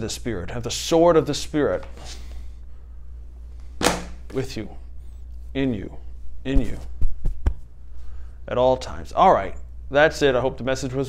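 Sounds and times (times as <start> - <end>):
low room hum: 0.0 - 11.0
man breathing in: 2.0 - 3.1, 7.9 - 8.4.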